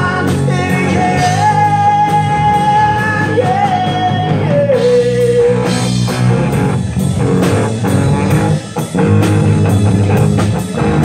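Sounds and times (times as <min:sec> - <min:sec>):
person singing: 0:00.0 - 0:06.0
live rock band playing: 0:00.0 - 0:11.0.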